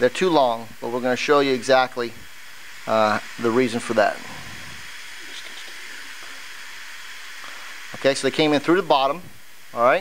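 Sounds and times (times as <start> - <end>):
faint hose rustles: 0.0 - 9.5
steady background hiss: 0.0 - 10.0.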